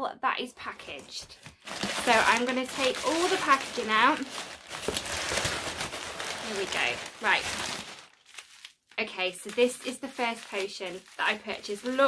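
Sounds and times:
packing material rustling: 0:00.8 - 0:12.0.

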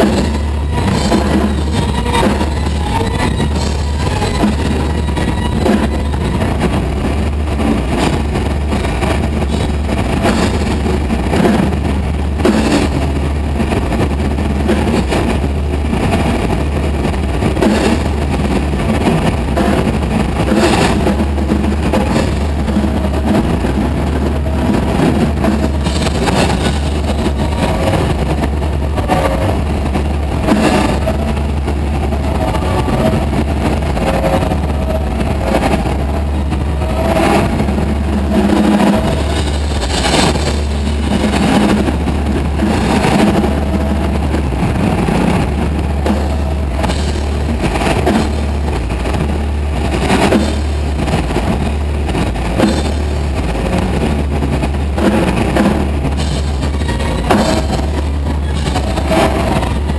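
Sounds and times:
drum and cymbal hits: 0:00.0 - 0:59.9
live band playing loud: 0:00.0 - 0:59.9.

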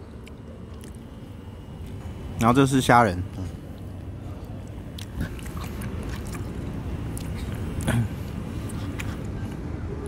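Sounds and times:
man chewing food: 0:00.1 - 0:02.0, 0:03.3 - 0:09.7.

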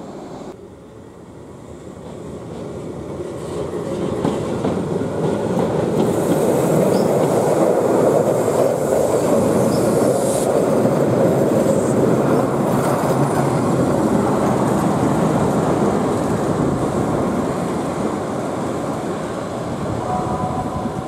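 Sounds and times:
train wheels rumbling on rails: 0:01.7 - 0:21.0.

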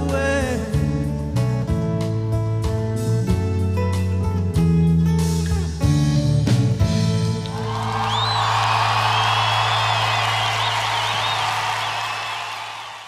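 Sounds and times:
audience applauding and cheering: 0:07.2 - 0:13.0
audience whistles: 0:07.5 - 0:13.0.

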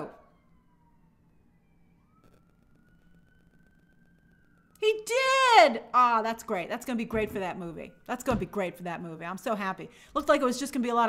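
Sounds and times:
distant siren wailing: 0:00.0 - 0:11.0.

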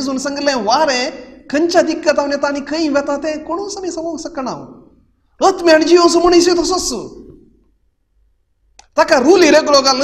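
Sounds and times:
man speaking: 0:00.0 - 0:07.4, 0:08.9 - 0:10.0
faint mouth click: 0:08.7 - 0:09.0.

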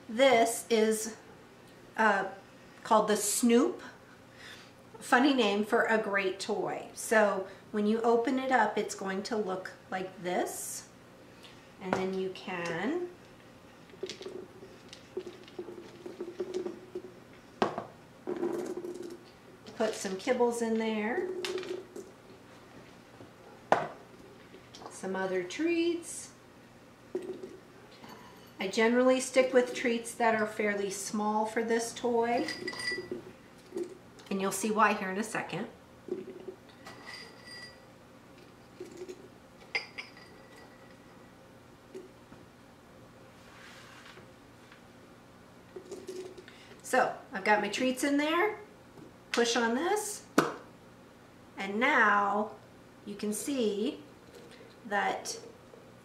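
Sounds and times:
cup knocking on counter: 0:15.2 - 0:19.1, 0:23.7 - 0:24.0
light glass clinks: 0:32.5 - 0:33.2.

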